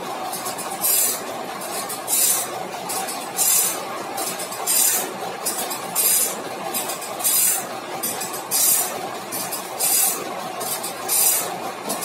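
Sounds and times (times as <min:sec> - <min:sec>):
machine running noise: 0:00.0 - 0:12.0
grinding wheel rasping on saw teeth: 0:00.3 - 0:12.0.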